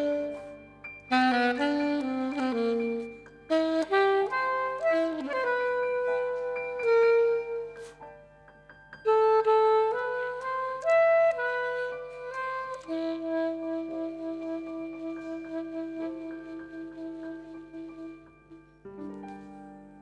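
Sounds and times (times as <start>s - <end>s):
alto saxophone slow melody: 0.0s - 20.0s.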